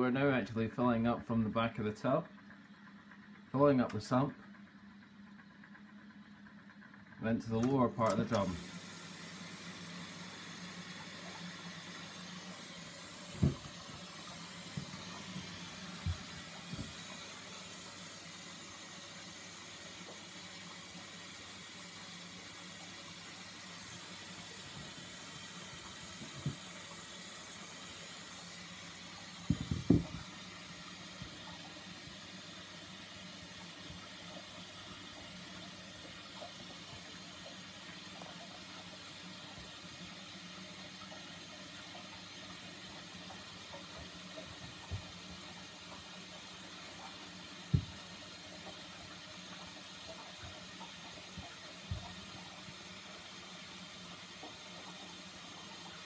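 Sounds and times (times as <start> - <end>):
water filling washing machine: 0.0 - 56.0.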